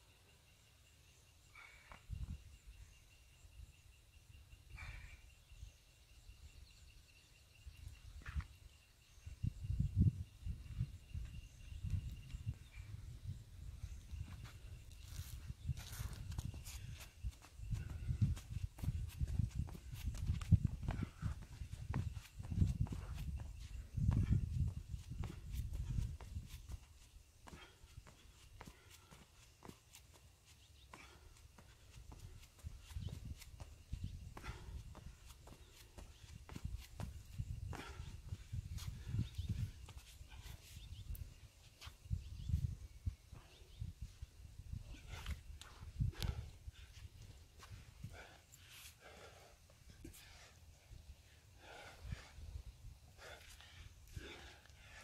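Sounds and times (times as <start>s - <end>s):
wind rumble on microphone: 7.6s - 28.2s, 31.9s - 48.4s
sneakers tapping on concrete: 30.9s - 38.0s.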